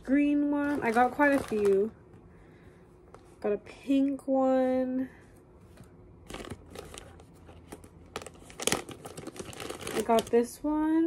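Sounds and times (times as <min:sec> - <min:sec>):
crinkly packaging rustling: 0:00.5 - 0:02.0, 0:06.2 - 0:10.5.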